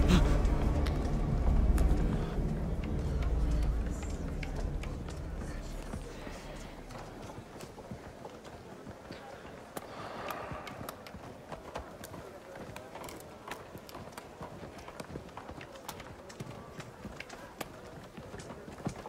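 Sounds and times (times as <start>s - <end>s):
low drone: 0.0s - 7.4s
murmur of voices: 0.0s - 19.0s.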